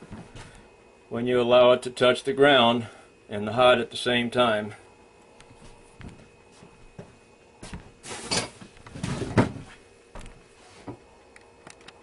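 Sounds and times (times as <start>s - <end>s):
rustling and scraping: 7.6s - 11.0s.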